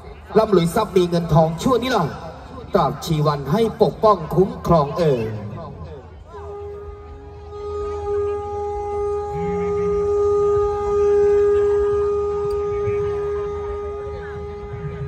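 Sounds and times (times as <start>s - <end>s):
long steady horn-like note: 6.2s - 15.0s.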